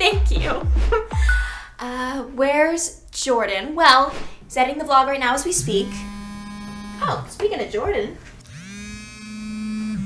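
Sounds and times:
smartphone vibrating buzz: 5.6s - 7.2s, 8.5s - 10.0s.

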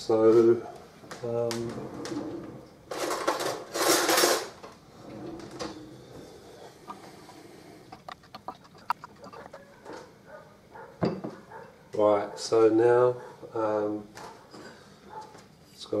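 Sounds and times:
spoon stirring in a bowl: 8.0s - 9.8s.

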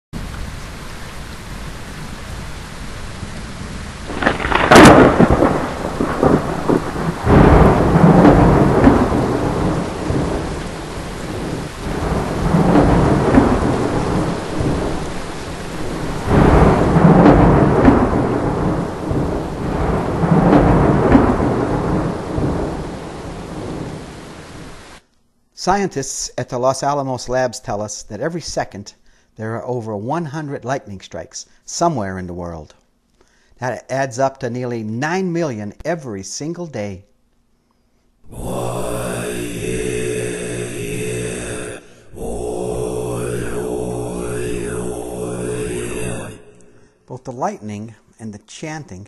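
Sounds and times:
heavy rain: 0.2s - 25.0s, 38.3s - 47.6s
rolling thunder: 1.5s - 25.0s, 38.3s - 47.0s
thunder crack: 3.5s - 24.9s, 38.3s - 47.0s.

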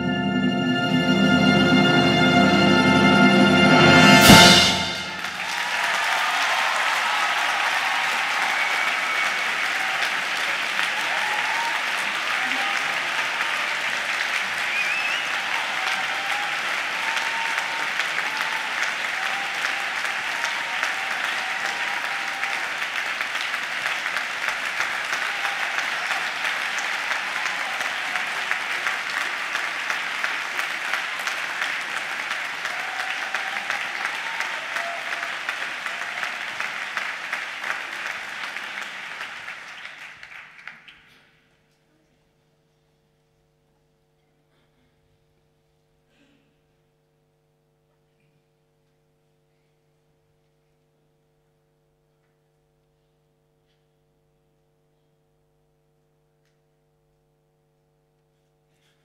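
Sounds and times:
audience applauding: 0.9s - 41.3s.

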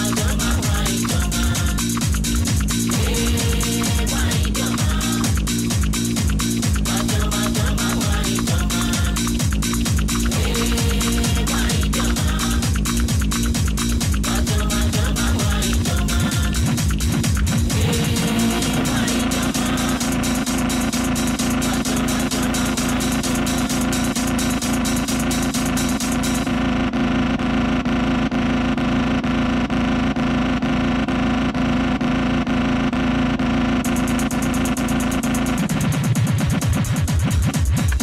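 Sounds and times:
bass: 0.0s - 38.0s
electronic dance beat: 0.0s - 38.0s.

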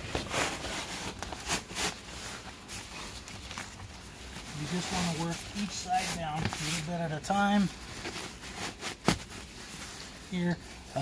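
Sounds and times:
fabric rustling and scraping: 0.0s - 11.0s.

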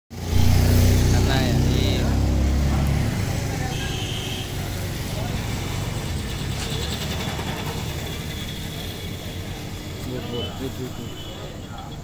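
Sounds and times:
vehicle engine running: 0.1s - 10.3s
voices in background: 1.2s - 12.0s.

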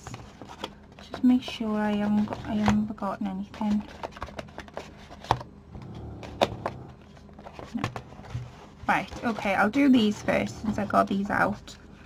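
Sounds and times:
paper folder rustling: 3.5s - 5.4s.

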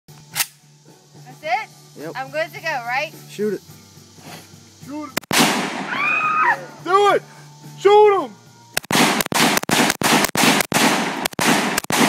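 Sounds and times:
sharp click: 0.2s - 0.6s, 8.7s - 12.0s.

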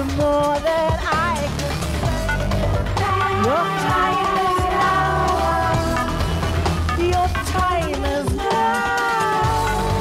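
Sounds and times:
bass: 0.0s - 10.0s.

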